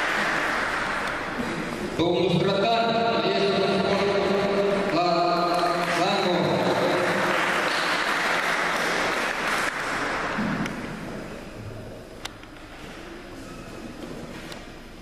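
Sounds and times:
crowd applause: 0.0s - 1.7s, 4.7s - 10.6s
low hall noise: 0.0s - 15.0s.

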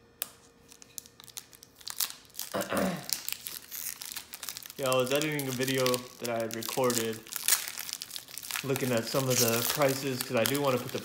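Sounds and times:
foil wrapper crinkling and tearing: 0.6s - 11.0s.

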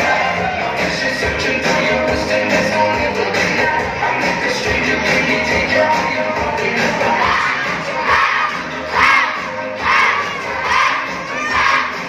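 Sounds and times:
dance music: 0.0s - 12.0s
children shouting in rhythm: 7.2s - 12.0s.

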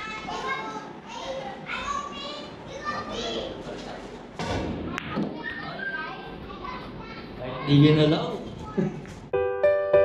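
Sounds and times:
people and children talking: 0.0s - 3.9s, 4.7s - 9.2s.

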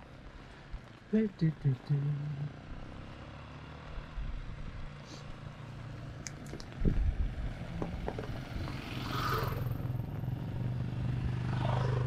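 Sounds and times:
distant vehicle engine hum: 0.0s - 12.0s.

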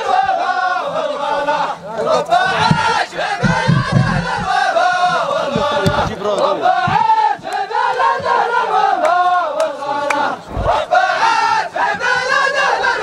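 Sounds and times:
men chanting in unison: 0.0s - 13.0s.

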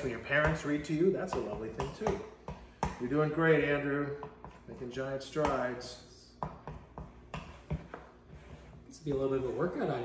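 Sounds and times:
spoon stirring sticky dough: 0.0s - 10.0s.

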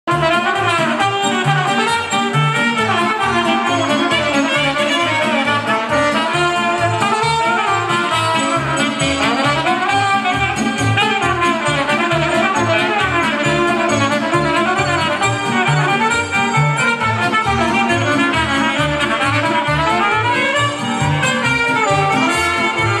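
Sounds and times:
bouncing bass beat: 0.1s - 23.0s
brass band music: 0.1s - 23.0s.

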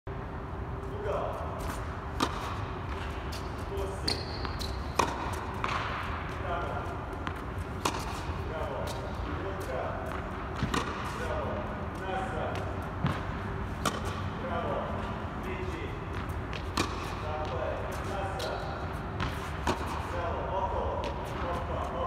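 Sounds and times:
tennis balls bouncing on court: 1.0s - 22.0s
tennis balls struck by rackets: 1.0s - 22.0s.

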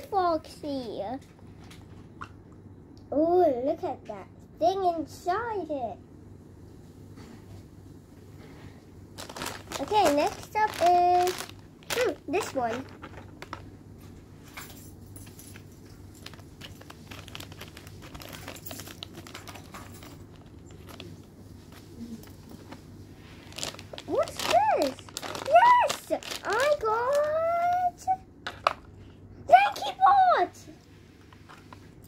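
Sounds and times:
plastic packet crinkling: 9.2s - 13.8s, 16.0s - 22.7s, 23.4s - 27.9s.

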